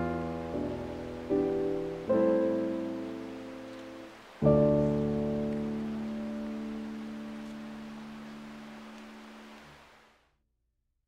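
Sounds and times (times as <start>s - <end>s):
piano chord ringing: 0.0s - 7.4s.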